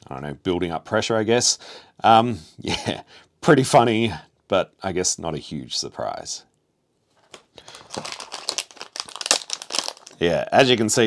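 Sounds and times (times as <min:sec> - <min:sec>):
plastic packet crinkling: 0:07.2 - 0:10.3.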